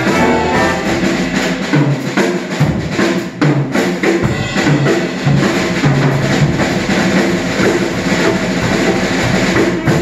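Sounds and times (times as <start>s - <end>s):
saxophone section: 0.0s - 1.6s
big band playing: 0.0s - 10.0s
drum kit: 0.0s - 10.0s.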